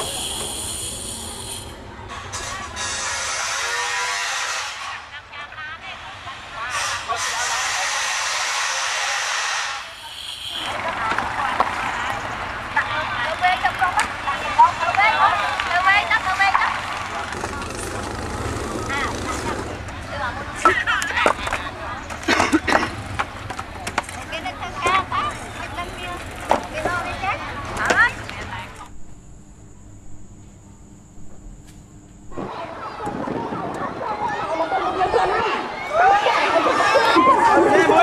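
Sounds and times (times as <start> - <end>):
voices speaking: 4.0 - 29.6, 32.3 - 38.0
low steady hum: 25.1 - 35.8.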